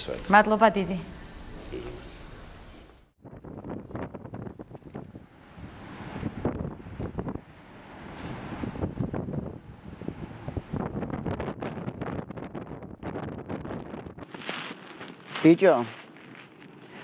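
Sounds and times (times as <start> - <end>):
street background noise: 0.0 - 11.7
wind buffeting microphone: 3.2 - 17.0.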